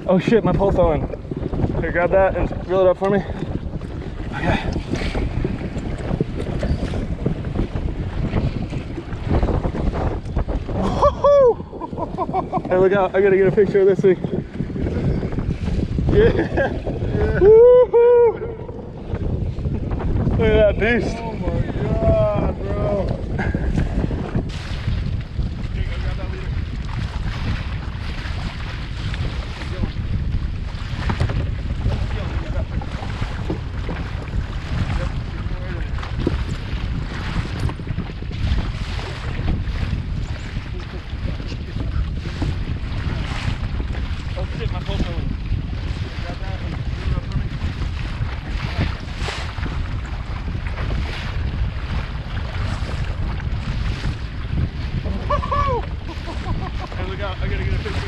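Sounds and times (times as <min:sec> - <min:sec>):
water slapping against hull: 0:00.0 - 0:58.0
wind buffeting microphone: 0:00.0 - 0:58.0.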